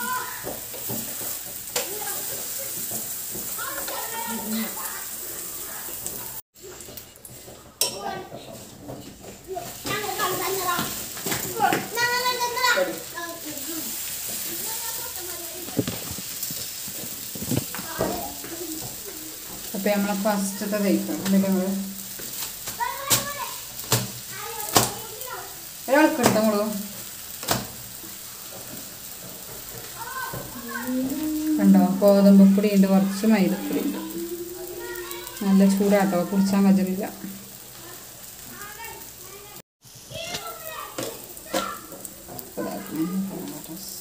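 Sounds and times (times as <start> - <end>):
voices: 0.0 - 6.4, 9.4 - 22.0, 24.3 - 27.0, 29.8 - 44.0
person talking: 30.6 - 37.1.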